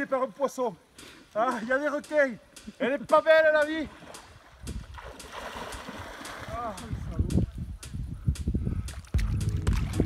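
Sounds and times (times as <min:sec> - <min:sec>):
water splashing from swimmer: 0:03.9 - 0:07.0.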